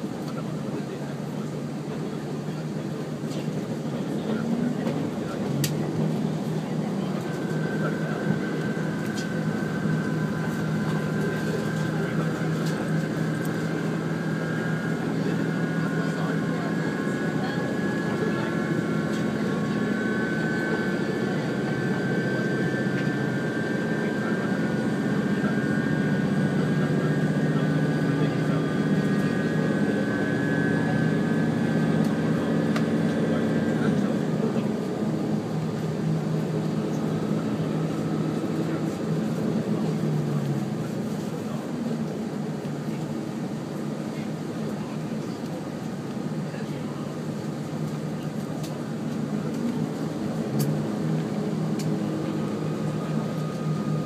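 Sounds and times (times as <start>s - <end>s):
diesel engine hum and whine: 0.0s - 54.0s.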